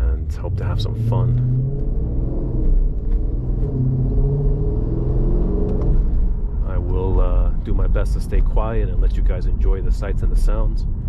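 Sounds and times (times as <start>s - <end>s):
car engine deep rumble: 0.0s - 11.0s.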